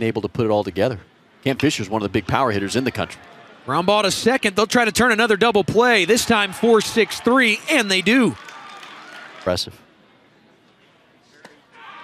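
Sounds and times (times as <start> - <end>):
faint ballpark ambience: 0.0 - 12.0.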